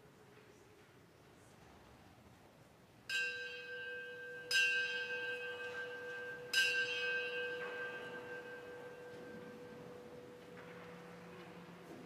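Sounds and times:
bell strikes ringing: 0:03.1 - 0:10.4.

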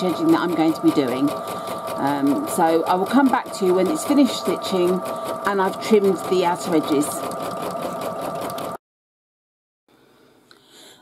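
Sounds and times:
embroidery machine whirring: 0:00.0 - 0:08.8.

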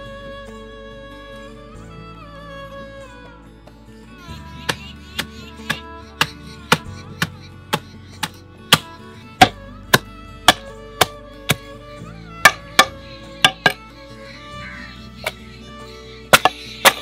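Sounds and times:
plucked and bowed string music: 0:00.0 - 0:17.0
pestle pounding in stone mortar: 0:04.7 - 0:11.7, 0:12.4 - 0:13.8, 0:16.3 - 0:17.0.

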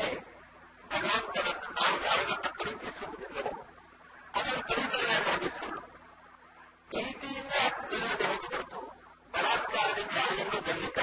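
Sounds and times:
man speaking: 0:04.4 - 0:05.9, 0:06.9 - 0:11.0.

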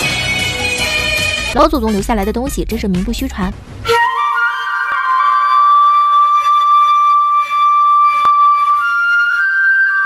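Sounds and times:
bamboo flute long note: 0:03.8 - 0:10.0.

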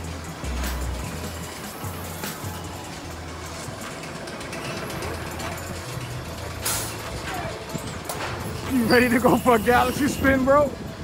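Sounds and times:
deep bass line music: 0:00.0 - 0:09.7
faint crowd voices: 0:01.3 - 0:11.0.

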